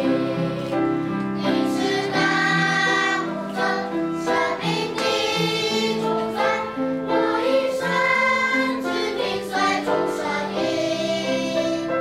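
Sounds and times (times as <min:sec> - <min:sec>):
children's choir singing a hymn: 0:00.0 - 0:12.0.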